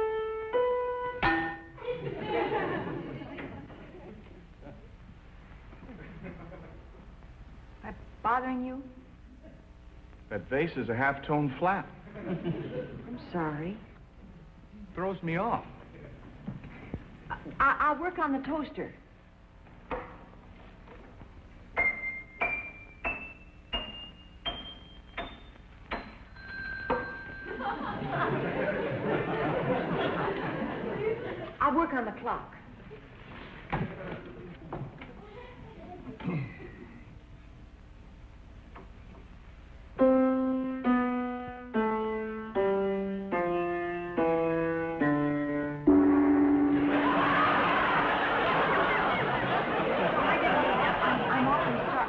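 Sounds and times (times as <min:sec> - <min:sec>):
piano notes struck: 0:00.0 - 0:01.8, 0:21.8 - 0:27.4, 0:40.0 - 0:48.0
audience laughter: 0:01.8 - 0:04.9, 0:05.8 - 0:07.0, 0:12.0 - 0:13.2, 0:27.5 - 0:31.6, 0:33.7 - 0:37.0, 0:46.7 - 0:52.0.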